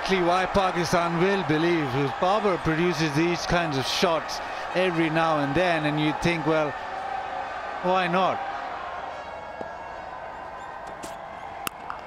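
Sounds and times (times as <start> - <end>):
stadium background noise: 0.0 - 12.0.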